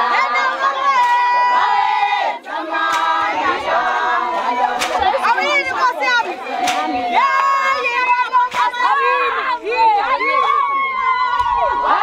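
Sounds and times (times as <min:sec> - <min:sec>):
women singing in chorus: 0:00.0 - 0:12.0.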